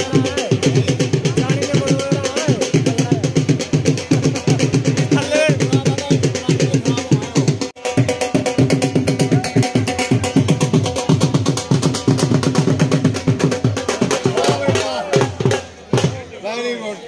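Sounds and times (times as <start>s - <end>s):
fast even drumming: 0.0s - 16.3s.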